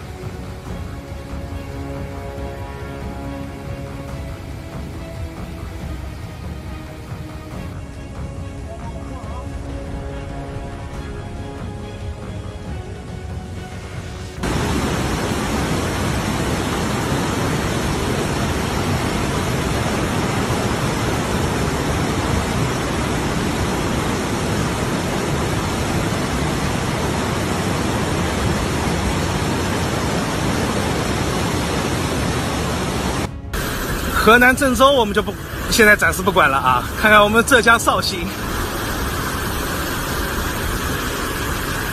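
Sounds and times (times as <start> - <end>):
rushing floodwater: 0.0 - 41.9.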